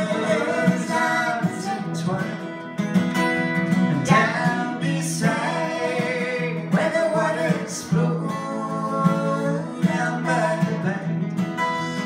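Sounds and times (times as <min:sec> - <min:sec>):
man and woman singing harmony: 0:00.0 - 0:02.4, 0:04.0 - 0:11.3
strummed acoustic guitars: 0:00.0 - 0:12.0.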